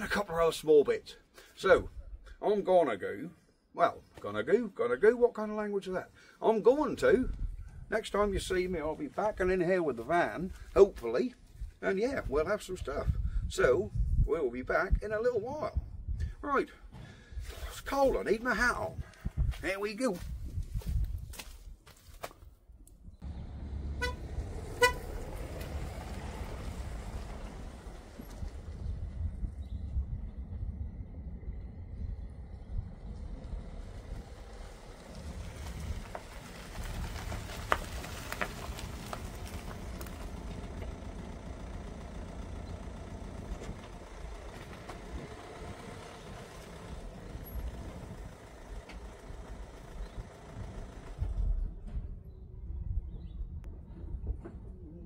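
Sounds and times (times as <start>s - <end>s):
van engine running: 23.2s - 52.2s
car horn toots: 23.9s - 25.3s.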